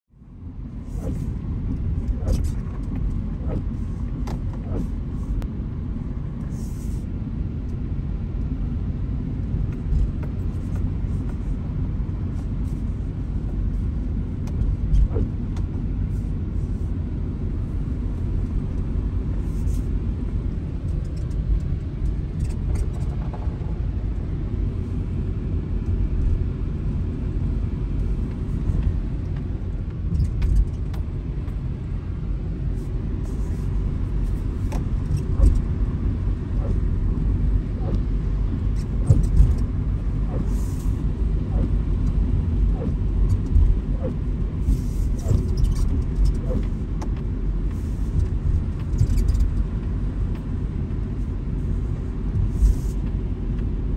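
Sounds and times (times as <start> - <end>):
car engine and tyre rumble: 0.0 - 53.9.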